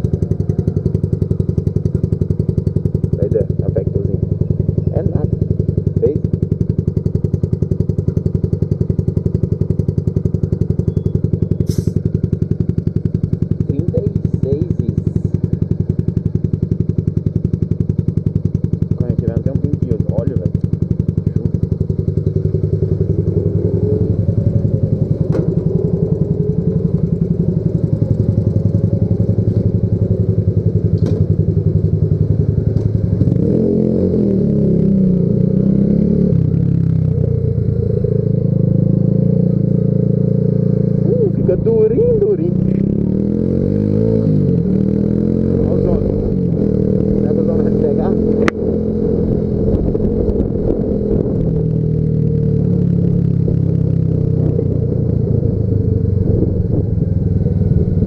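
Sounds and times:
motorcycle engine idling: 0.0s - 35.8s, 36.4s - 58.0s.

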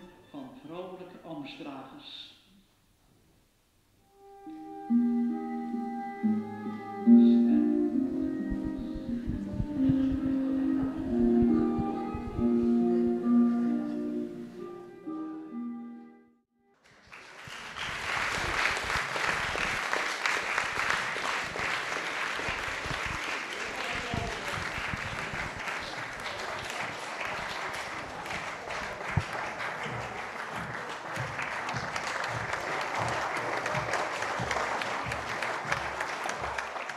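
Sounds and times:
audience applauding: 16.8s - 36.9s.

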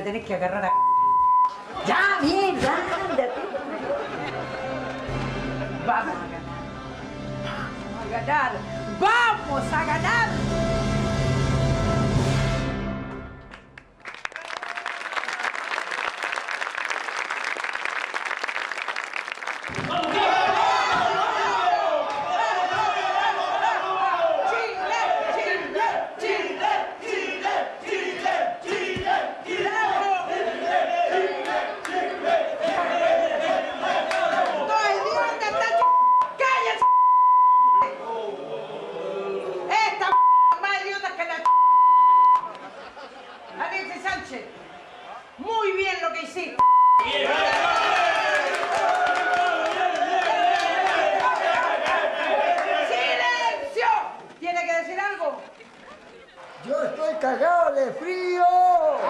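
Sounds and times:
high censor beep: 0.7s - 1.5s, 35.8s - 37.9s, 40.1s - 40.6s, 41.4s - 42.5s, 46.6s - 47.1s
music: 3.9s - 13.9s
crowd shouting: 19.7s - 36.9s, 37.9s - 40.0s, 44.5s - 45.5s, 47.0s - 54.3s, 57.9s - 59.0s.

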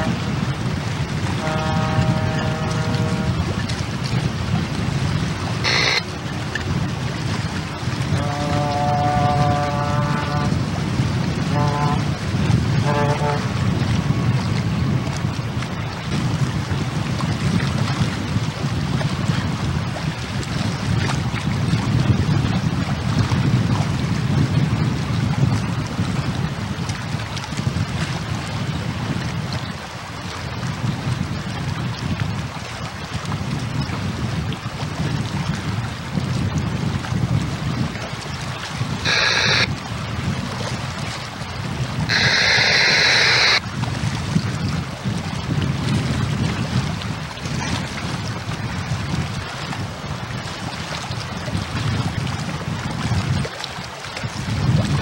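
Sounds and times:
wind buffeting microphone: 0.0s - 55.0s
steady pitched tones: 5.6s - 6.6s, 39.0s - 39.7s, 42.1s - 43.6s.

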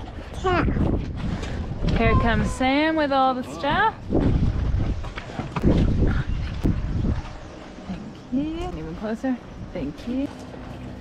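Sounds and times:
wind buffeting microphone: 0.0s - 10.3s.

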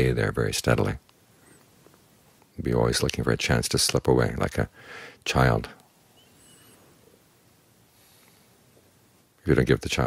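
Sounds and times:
faint high bird chirp: 6.1s - 6.9s.

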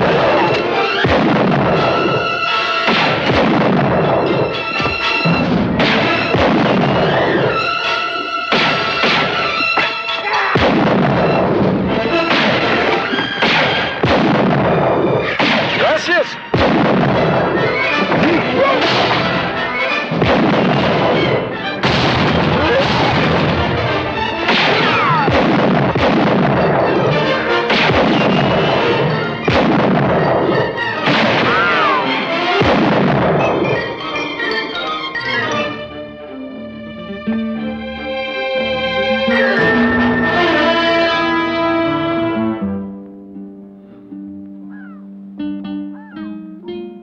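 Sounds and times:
orchestral music: 0.0s - 47.0s
rifle shots: 1.0s - 2.2s, 2.8s - 4.6s, 5.8s - 7.7s, 10.6s - 11.4s, 12.3s - 19.4s, 20.1s - 33.8s.

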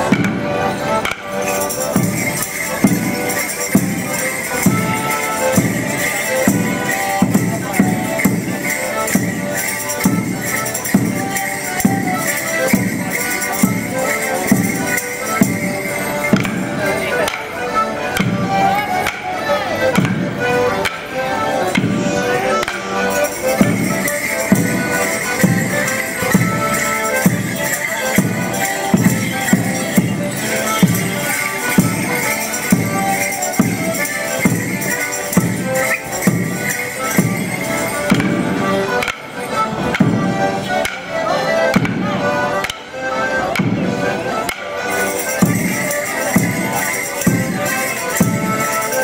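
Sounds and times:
accordion playing dance tune: 0.0s - 49.0s
squeezebox music: 1.0s - 17.6s, 21.7s - 40.0s, 44.4s - 49.0s.

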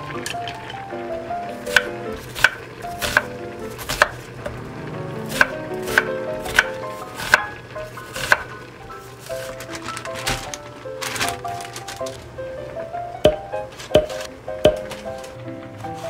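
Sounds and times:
knife chopping on wooden board: 1.7s - 4.3s, 5.3s - 7.5s, 8.1s - 8.5s, 13.3s - 14.8s.

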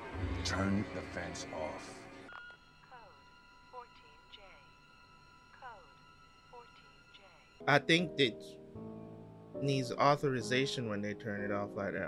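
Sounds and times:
faint television dialogue: 0.0s - 8.6s, 9.6s - 12.0s
soft music drone: 0.0s - 12.0s.

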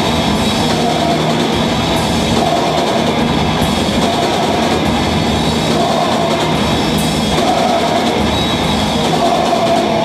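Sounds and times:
distorted electric guitars: 0.0s - 10.0s
drum kit with cymbals: 0.0s - 10.0s.

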